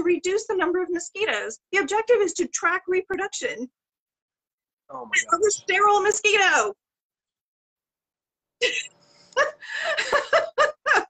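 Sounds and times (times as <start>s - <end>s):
breathy laughter: 8.6s - 11.0s.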